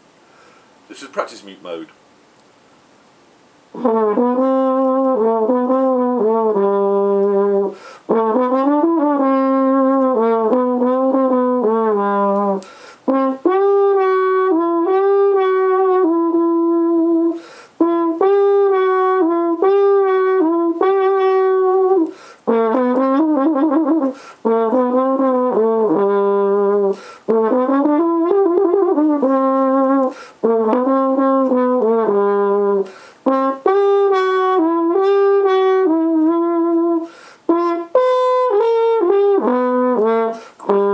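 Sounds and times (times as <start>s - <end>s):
muted trombone melody: 3.7s - 40.9s.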